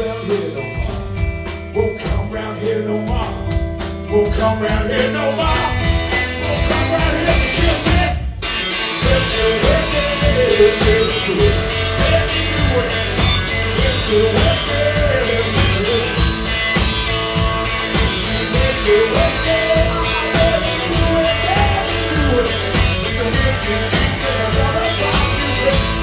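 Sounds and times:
electric guitar bending notes: 0:00.0 - 0:26.0
live rock band playing: 0:00.0 - 0:26.0.

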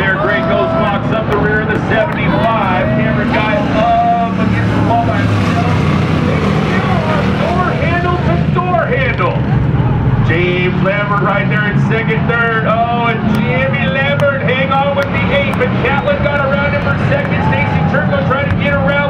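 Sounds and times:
person talking: 0:00.0 - 0:09.4
race car engines droning: 0:00.0 - 0:19.0.

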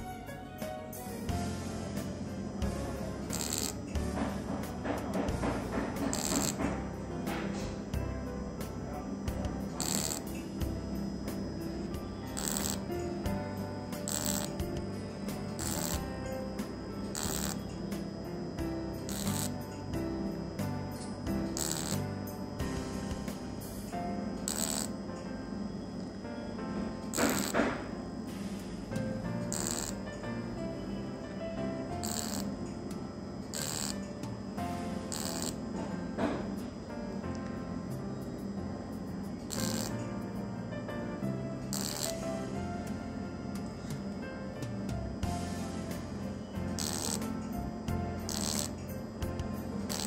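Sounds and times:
background music: 0:00.0 - 0:50.0
laser handpiece hissing bursts: 0:01.4 - 0:04.0, 0:05.5 - 0:06.8, 0:08.5 - 0:16.4, 0:17.0 - 0:25.0, 0:27.2 - 0:30.1, 0:32.0 - 0:32.5, 0:33.5 - 0:34.0, 0:34.6 - 0:35.6, 0:39.5 - 0:40.0, 0:41.7 - 0:42.4, 0:45.3 - 0:47.3, 0:48.2 - 0:48.8
short hissing bursts: 0:28.3 - 0:28.9.

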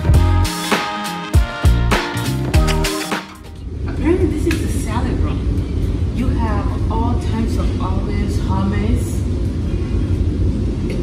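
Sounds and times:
steady low rumble: 0:03.5 - 0:11.0
woman talking: 0:03.9 - 0:09.4.

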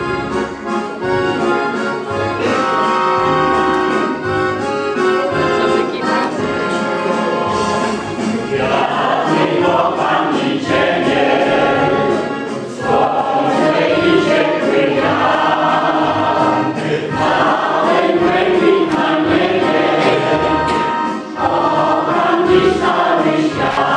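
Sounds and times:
choir singing: 0:06.0 - 0:23.9.

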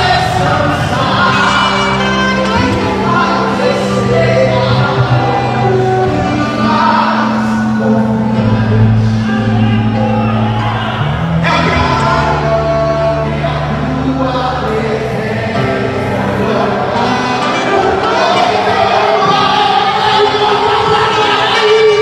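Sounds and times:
gospel band playing: 0:00.0 - 0:22.0
long held bass notes: 0:00.0 - 0:22.0
man singing into a microphone: 0:00.0 - 0:22.0.

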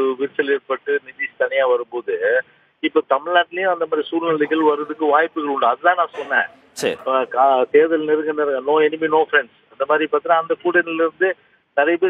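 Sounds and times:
man speaking over telephone: 0:03.8 - 0:08.5.

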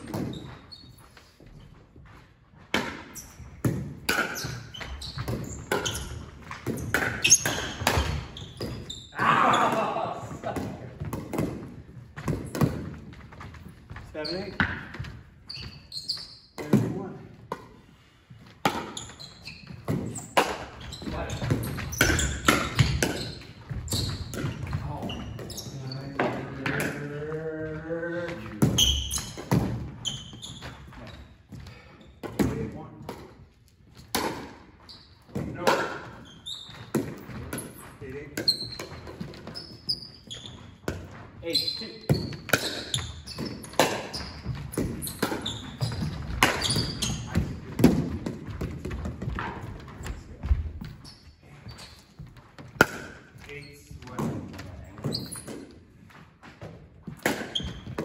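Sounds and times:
ball bouncing on wooden floor: 0:02.0 - 0:17.8, 0:18.4 - 0:27.6, 0:28.2 - 0:41.5, 0:42.1 - 0:58.0
paddles hitting plastic ball: 0:42.1 - 0:51.0, 0:52.1 - 0:53.5, 0:54.1 - 0:58.0.

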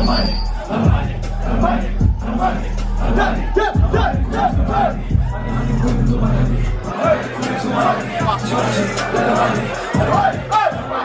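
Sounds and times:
crowd yelling: 0:00.0 - 0:11.0
hip hop beat: 0:00.0 - 0:11.0
shouted vocals: 0:00.0 - 0:11.0.

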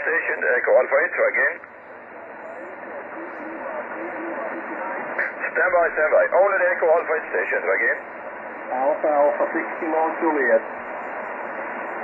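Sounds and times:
faint voices on radio: 0:00.0 - 0:12.0
radio band noise hiss: 0:00.0 - 0:12.0.

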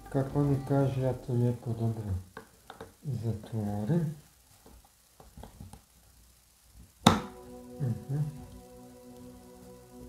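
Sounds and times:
plastic clicks and taps: 0:02.4 - 0:03.0.

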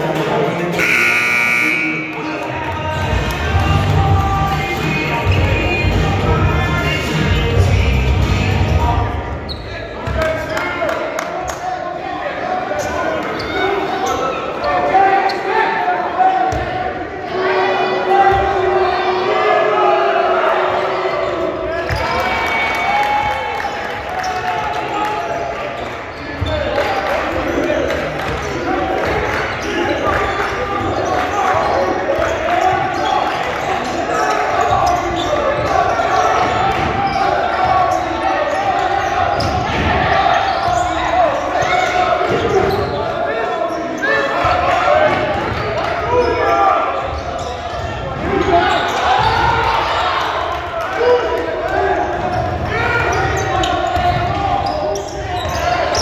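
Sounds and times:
shouting and chatter: 0:00.0 - 0:56.0.

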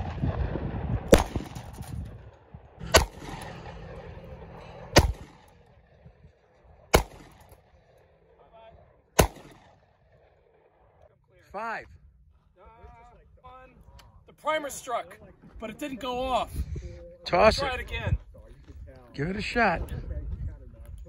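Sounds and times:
handgun shots with echo: 0:01.1 - 0:02.0, 0:02.8 - 0:03.8, 0:04.9 - 0:05.5, 0:06.9 - 0:07.6, 0:09.2 - 0:09.8.

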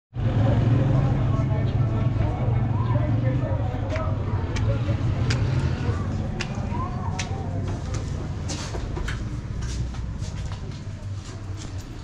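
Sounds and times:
traffic engine hum: 0:00.2 - 0:12.0
voices: 0:00.2 - 0:12.0.

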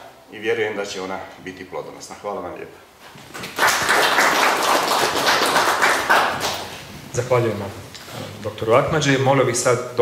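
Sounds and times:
audience applauding: 0:03.3 - 0:06.8.

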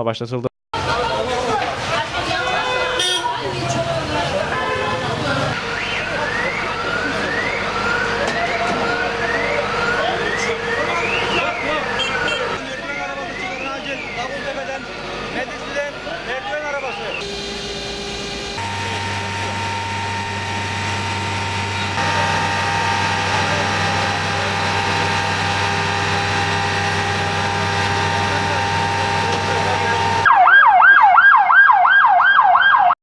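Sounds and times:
emergency vehicle siren: 0:03.5 - 0:33.0
steady drone with held tones: 0:17.2 - 0:30.3.

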